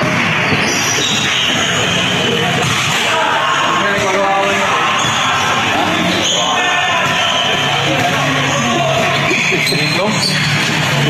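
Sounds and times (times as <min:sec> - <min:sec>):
voices in a hall: 0:00.0 - 0:11.0.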